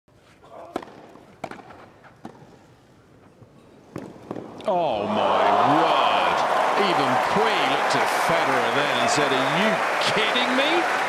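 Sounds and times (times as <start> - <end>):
tennis ball struck by racquets: 0.7 - 2.5.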